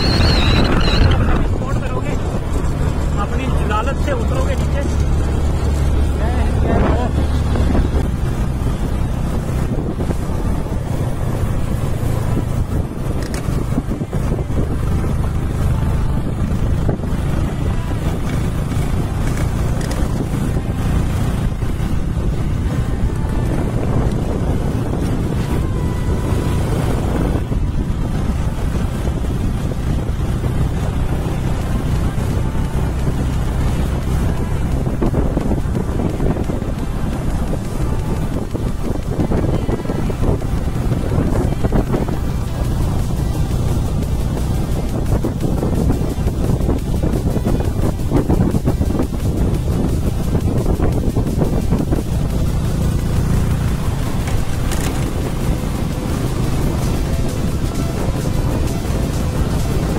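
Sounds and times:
motorcycle engine drone: 0.0 - 59.9
wind buffeting microphone: 0.0 - 59.9.

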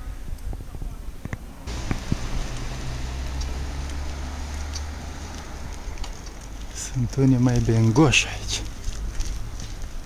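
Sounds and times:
street noise: 0.0 - 10.0
vehicle engine humming: 1.6 - 10.0.

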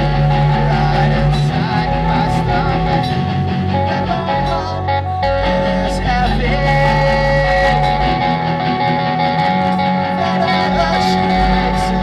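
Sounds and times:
deep bass: 0.0 - 12.0
live rock band playing: 0.0 - 12.0.

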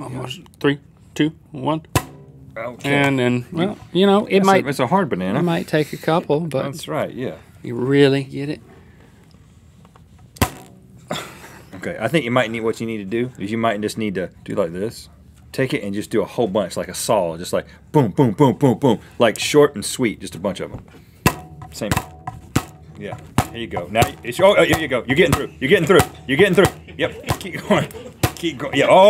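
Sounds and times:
rubber band slapping banana: 10.3 - 10.9.

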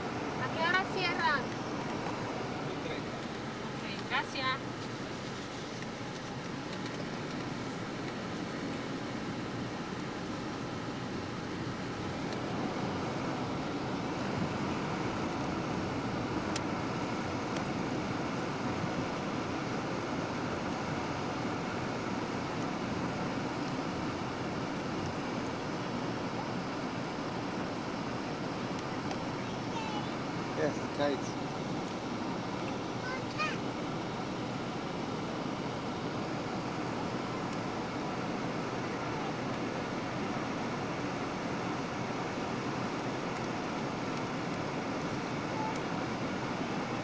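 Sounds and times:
road and engine noise in car: 0.0 - 47.0.

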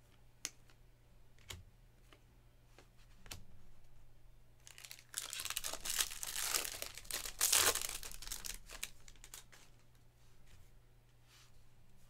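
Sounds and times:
foil wrapper tearing and crinkling: 4.6 - 9.6.

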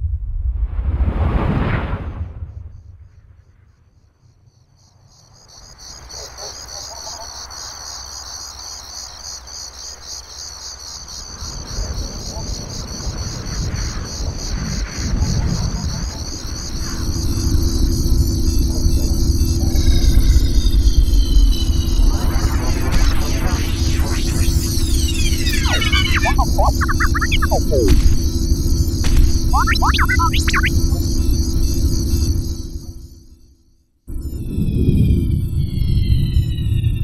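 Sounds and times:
crickets chirping: 4.5 - 34.8
hum with falling electronic tones: 23.9 - 28.2, 29.2 - 30.8.

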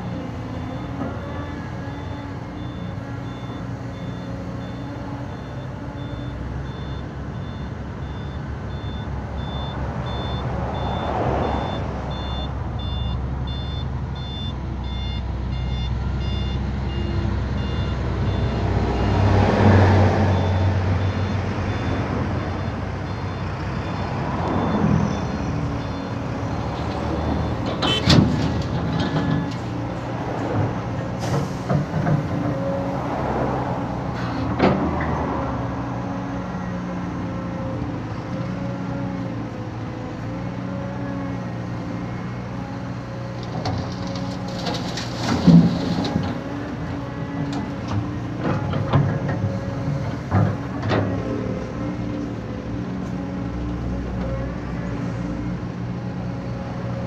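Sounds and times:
truck reversing beeper: 0.0 - 28.4, 31.2 - 31.8
excavator diesel engine: 0.0 - 57.0.

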